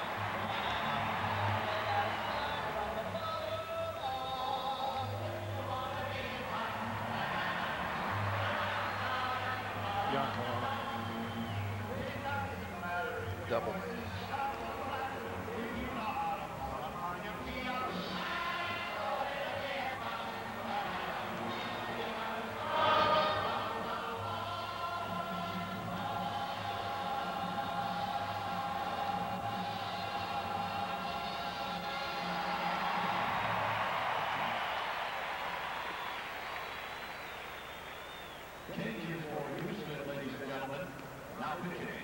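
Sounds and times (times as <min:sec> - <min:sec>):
crowd noise: 0:00.0 - 0:42.0
music over stadium speakers: 0:00.0 - 0:42.0.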